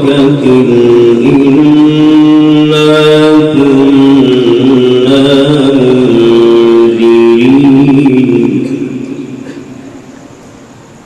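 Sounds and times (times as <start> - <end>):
man chanting through microphone: 0.0 - 9.9.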